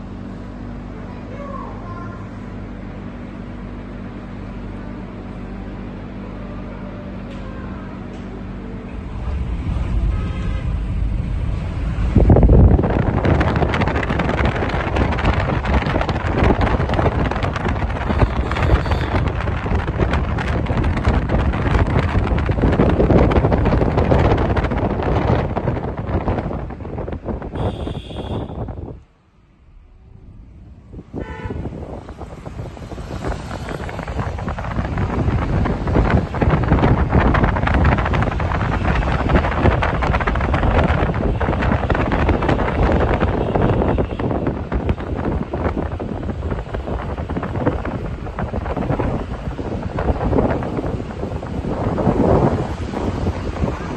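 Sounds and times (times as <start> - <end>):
road and engine rumble: 0.0 - 53.9
wind buffeting microphone: 7.8 - 53.9.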